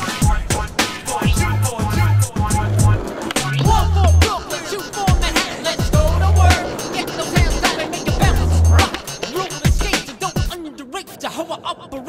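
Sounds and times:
hip hop backing track: 0:00.0 - 0:11.2
skateboard wheels rolling on asphalt: 0:00.0 - 0:12.0.

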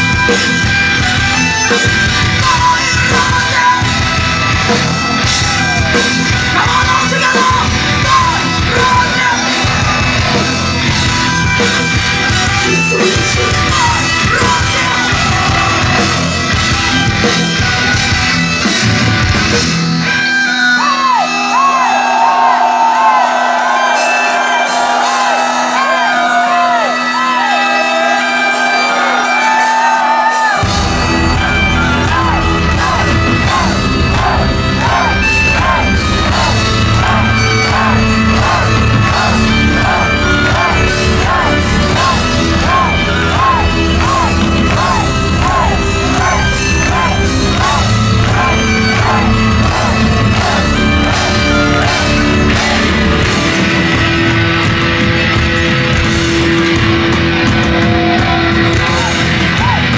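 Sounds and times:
distorted electric guitars: 0:00.0 - 0:59.9
fast drums: 0:00.0 - 0:59.9
metal band playing: 0:00.0 - 0:59.9
shouted vocal: 0:20.6 - 0:53.3, 0:57.8 - 0:59.9.

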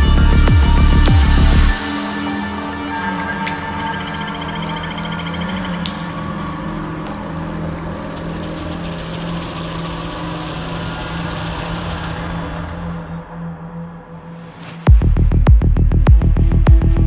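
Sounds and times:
ambient electronic music: 0:00.0 - 0:17.0.

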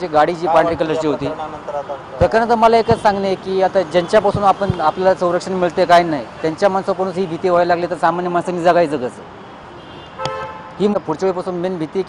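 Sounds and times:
outdoor background noise: 0:00.0 - 0:12.0
vehicle horn honk: 0:09.8 - 0:10.8.

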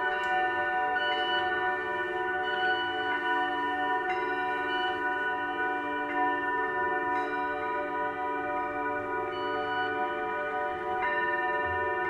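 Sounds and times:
singing bowls ringing: 0:00.0 - 0:12.0.

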